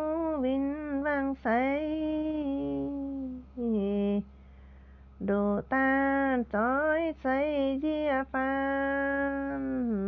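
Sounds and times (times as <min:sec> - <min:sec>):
woman singing unaccompanied: 0:00.0 - 0:04.4, 0:05.2 - 0:10.0.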